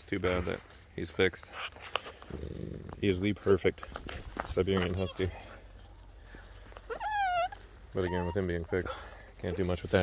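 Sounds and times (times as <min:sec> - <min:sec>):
dog whining: 0:06.8 - 0:08.9.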